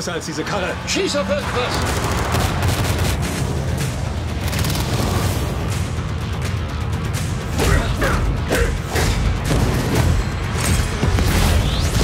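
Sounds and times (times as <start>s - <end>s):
loud trailer music: 0.0s - 12.0s.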